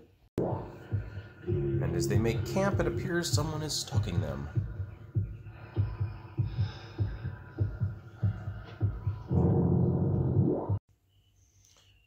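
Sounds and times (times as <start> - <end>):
low heartbeat-like thumping: 0.4 - 10.8.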